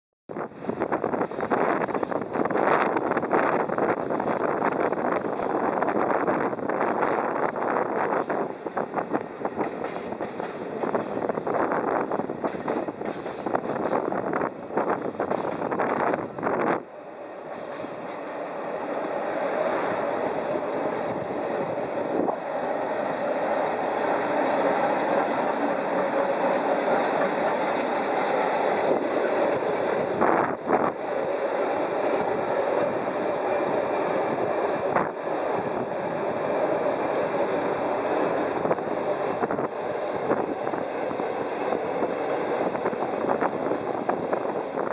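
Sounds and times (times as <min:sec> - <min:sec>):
wagon wheels rumbling on rails: 0:00.3 - 0:44.9.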